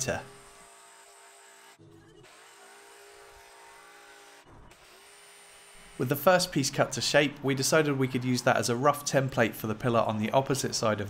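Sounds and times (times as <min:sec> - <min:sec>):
jigsaw cutting plywood: 0:00.3 - 0:06.1.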